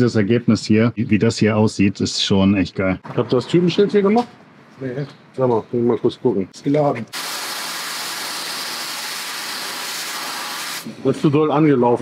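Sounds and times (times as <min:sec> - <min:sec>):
dry-ice blaster hissing jet: 0:07.2 - 0:10.9.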